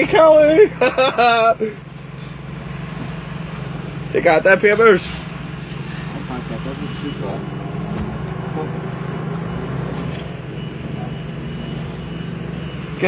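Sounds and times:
vehicle engine humming: 0.0s - 13.0s.

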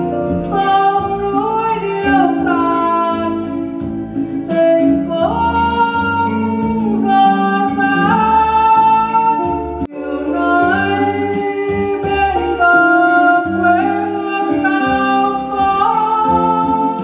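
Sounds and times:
instrumental accompaniment with beat: 0.0s - 17.0s
person singing a ballad: 0.0s - 17.0s.

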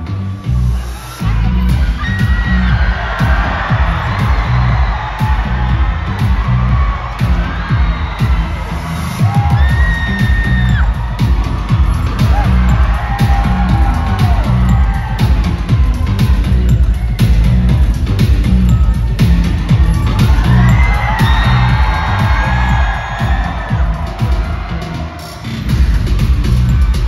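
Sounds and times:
dance track with heavy bass beat: 0.0s - 27.0s
fans screaming and cheering: 0.0s - 27.0s.

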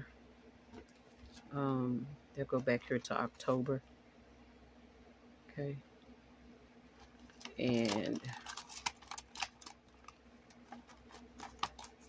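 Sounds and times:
paper rustling: 7.0s - 12.0s.

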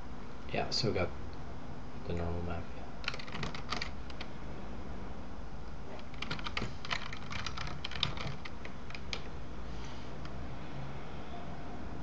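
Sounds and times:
keyboard typing clicks: 3.0s - 4.3s, 6.0s - 9.3s.

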